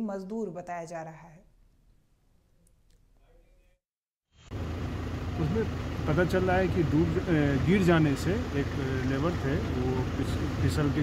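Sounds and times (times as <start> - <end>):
vehicle rumble from inside cabin: 4.5 - 11.0
man talking: 5.4 - 11.0.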